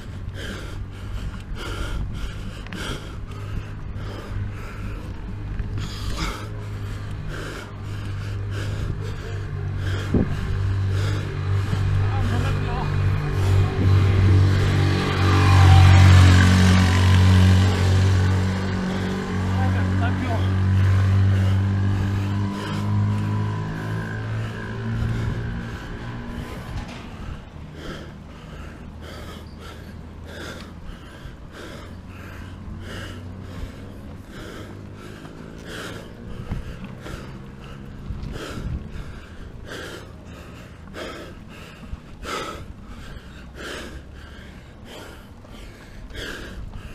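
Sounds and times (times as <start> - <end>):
car passing: 0.0 - 46.9
cyclist panting heavily: 0.0 - 46.9.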